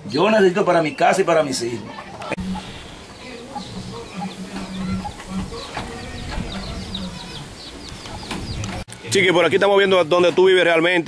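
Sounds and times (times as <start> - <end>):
chickens clucking: 0.6 - 10.5.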